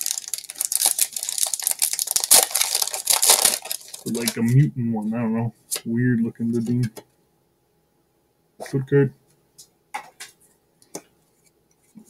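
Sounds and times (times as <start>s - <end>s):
foil wrapper crinkling and tearing: 0.0s - 4.6s.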